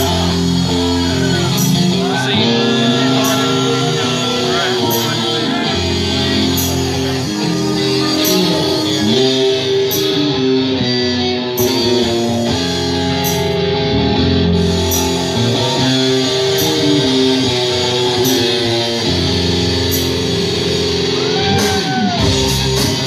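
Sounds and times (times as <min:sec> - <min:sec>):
rock band playing: 0:00.0 - 0:23.0.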